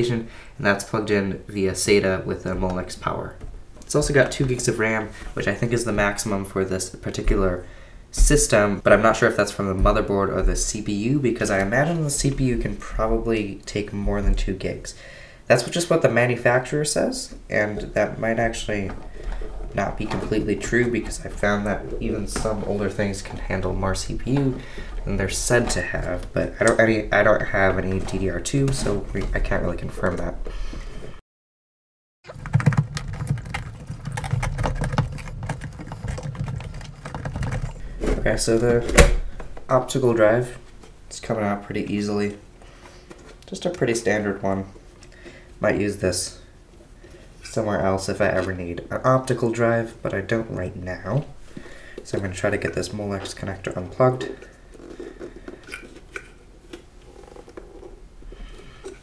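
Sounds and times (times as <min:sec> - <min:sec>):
plastic and metal clicking rattling: 0:32.3 - 0:37.8.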